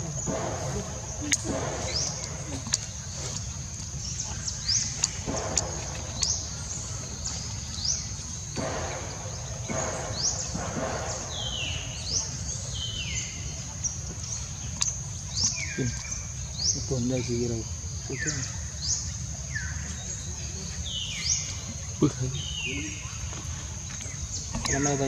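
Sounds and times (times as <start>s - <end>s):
high insect drone: 0.0s - 25.0s
high rising bird chirps: 0.0s - 25.0s
low background rumble: 0.0s - 25.0s
lower falling bird calls: 0.0s - 25.0s.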